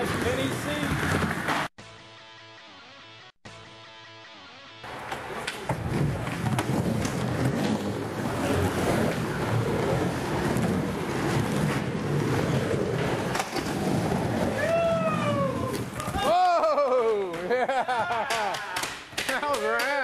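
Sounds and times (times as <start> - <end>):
skateboard wheels rolling: 0.0 - 1.7, 4.9 - 19.8
skateboard clacks: 17.0 - 20.0.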